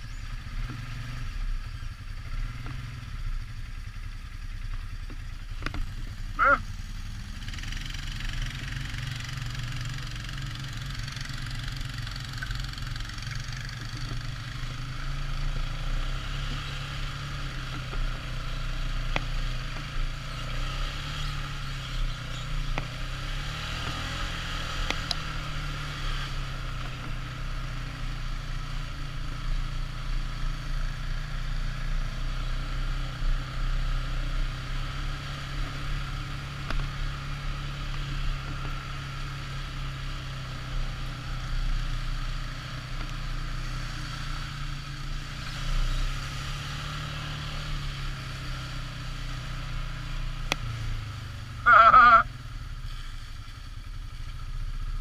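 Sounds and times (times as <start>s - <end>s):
quad bike engine running: 0.0s - 55.0s.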